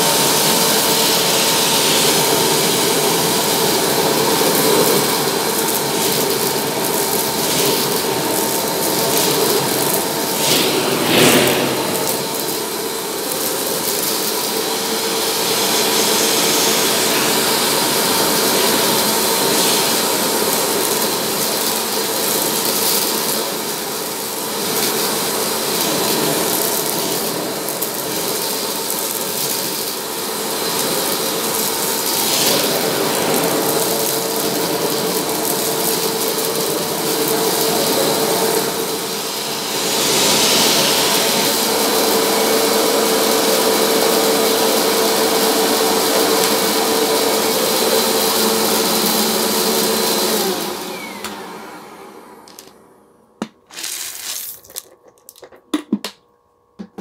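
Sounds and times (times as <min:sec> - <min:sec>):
vacuum cleaner running: 0:00.0 - 0:56.1
gravel sucked through hose: 0:01.1 - 0:23.8, 0:24.4 - 0:43.9, 0:53.7 - 0:54.6.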